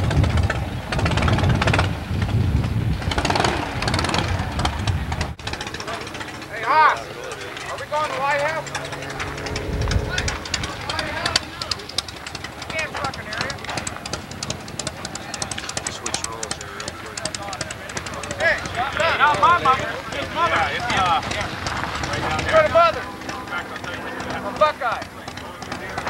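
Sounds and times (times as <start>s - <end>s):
people talking indistinctly: 3.8s - 26.0s.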